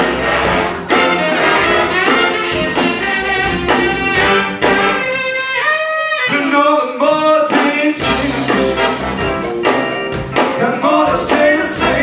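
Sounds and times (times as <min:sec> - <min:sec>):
tenor saxophone: 0:00.0 - 0:06.5
funk big band playing: 0:00.0 - 0:12.0.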